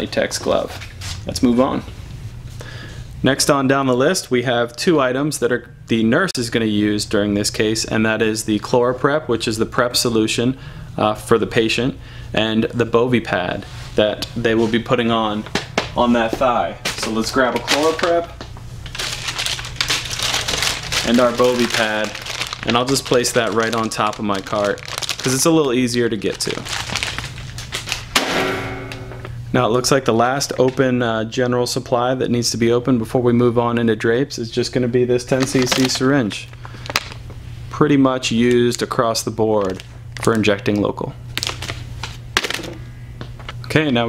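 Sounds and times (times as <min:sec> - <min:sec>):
plastic packaging crinkling: 0:17.0 - 0:18.2, 0:18.8 - 0:28.2, 0:35.3 - 0:37.3, 0:39.6 - 0:42.7
low hum: 0:26.6 - 0:29.5.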